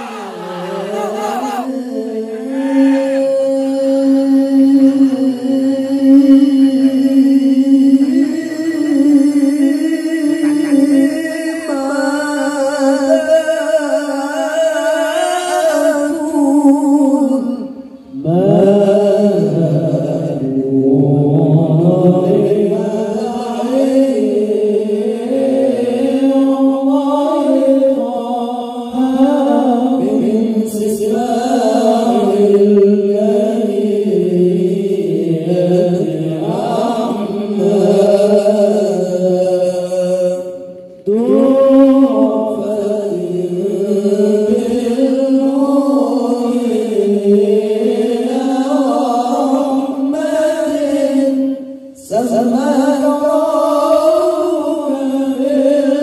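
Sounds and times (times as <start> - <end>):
men chanting devotional songs: 0.0 - 56.0.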